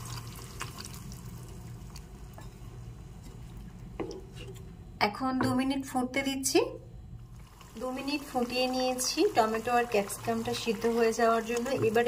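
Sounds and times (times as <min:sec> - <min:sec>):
gravy bubbling in a pan: 0:00.0 - 0:02.1.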